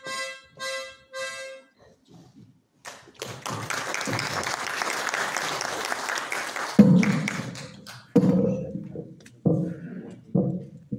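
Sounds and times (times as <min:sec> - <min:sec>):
audience applauding: 0:02.9 - 0:08.1.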